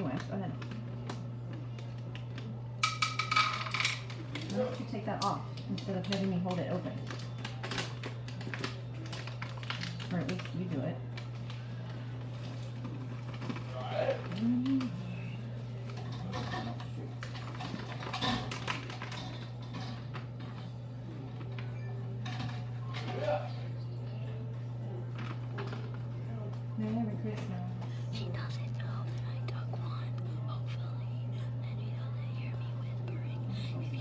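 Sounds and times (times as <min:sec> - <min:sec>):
steady low hum: 0:00.0 - 0:34.0.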